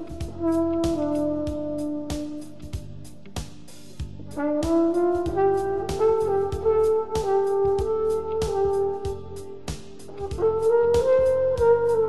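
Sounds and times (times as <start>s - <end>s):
muted flugelhorn: 0.0s - 2.8s, 4.3s - 12.0s
funky backing track with drums: 0.0s - 12.0s.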